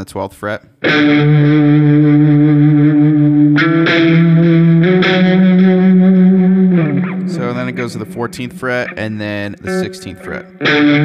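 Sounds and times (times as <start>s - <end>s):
distorted electric guitar notes: 0.8s - 11.0s.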